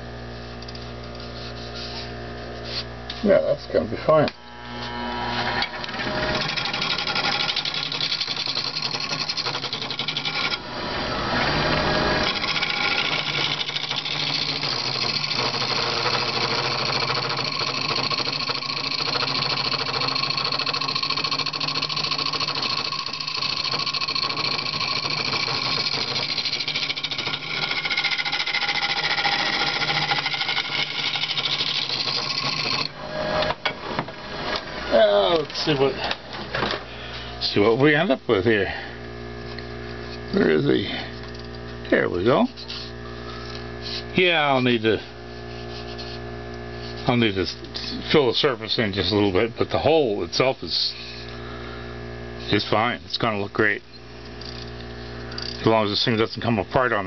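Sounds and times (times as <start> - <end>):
turning tool scraping wood: 1.1 - 3.4, 4.6 - 33.6, 42.5 - 48.2
wood lathe hum: 4.3 - 36.2.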